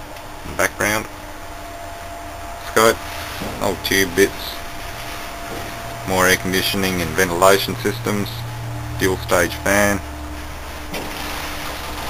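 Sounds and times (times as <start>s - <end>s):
ventilation fan running: 0.0s - 12.0s.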